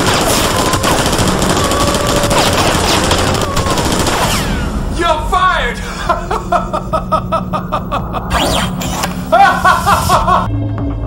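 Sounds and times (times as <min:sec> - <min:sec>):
low music drone: 0:00.0 - 0:11.0
rhythmic laugh: 0:05.8 - 0:10.5.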